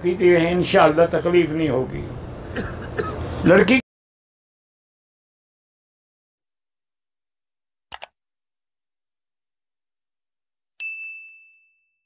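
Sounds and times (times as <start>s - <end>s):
notification bell ding: 10.8s - 12.0s.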